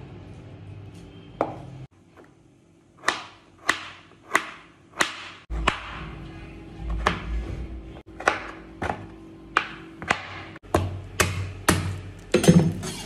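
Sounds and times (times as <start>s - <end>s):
knife chopping on wooden board: 3.0s - 6.0s, 8.1s - 12.8s.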